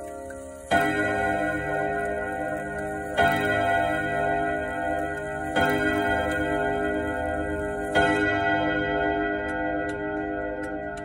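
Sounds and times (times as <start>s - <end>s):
clock ticking: 0.0s - 8.4s
clock rod gongs chiming: 0.0s - 11.0s.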